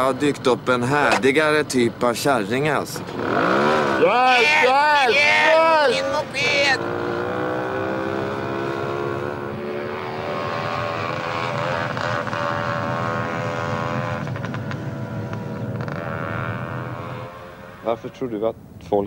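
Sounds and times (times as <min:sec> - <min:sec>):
moped engine at high revs: 0:02.8 - 0:17.9.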